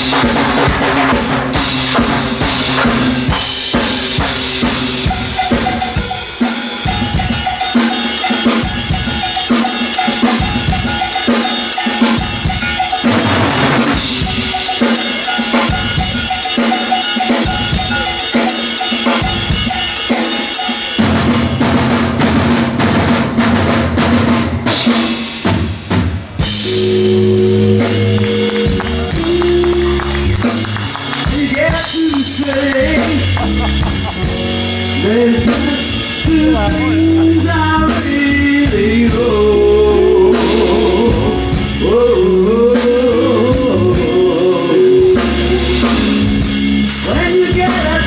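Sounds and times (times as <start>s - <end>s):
bass and keyboard notes: 0.0s - 20.4s, 26.2s - 48.0s
hand percussion: 0.0s - 21.2s, 26.5s - 41.1s
drum kit solo: 0.0s - 48.0s
cowbell-like metal hits: 3.3s - 21.4s.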